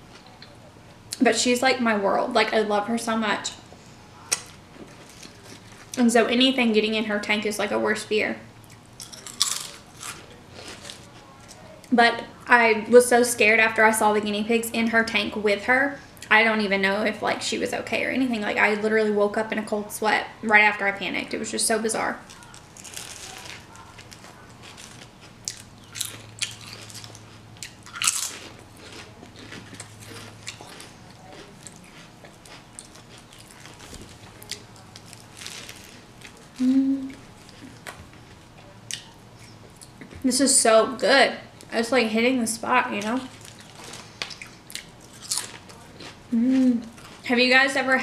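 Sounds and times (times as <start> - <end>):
faint low hum: 0.0 - 48.0
chewing: 8.6 - 11.9, 22.2 - 40.2, 43.3 - 47.3
potato chip crunching: 9.0 - 11.6, 22.2 - 38.0, 43.0 - 47.3.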